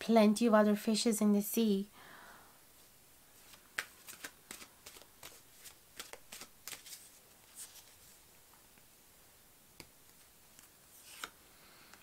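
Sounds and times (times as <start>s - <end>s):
cards clicking and flicking: 3.5s - 7.0s, 9.8s - 12.0s.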